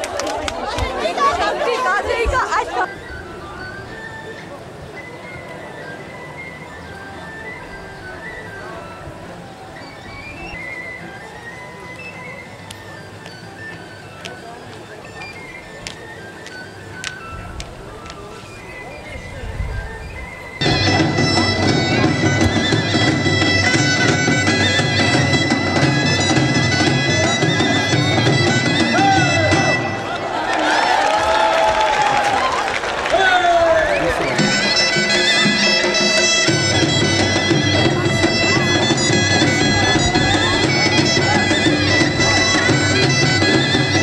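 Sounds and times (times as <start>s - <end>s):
people talking and calling out: 0.0s - 44.0s
reedy wind instrument trilling melody: 0.0s - 44.0s.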